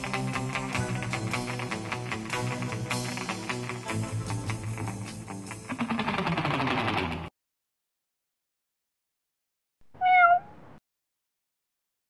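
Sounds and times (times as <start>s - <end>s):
cat meowing: 10.0s - 10.6s.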